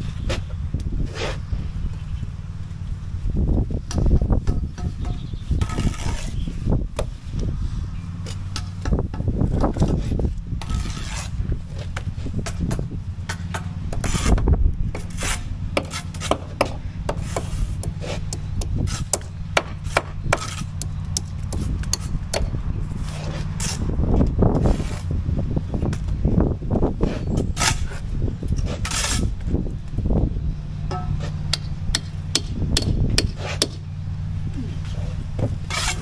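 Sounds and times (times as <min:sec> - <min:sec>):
trowels scraping and tapping: 0:04.2 - 0:06.5, 0:08.2 - 0:14.4, 0:15.0 - 0:22.1, 0:35.4 - 0:36.0
low machine hum: 0:28.0 - 0:36.0.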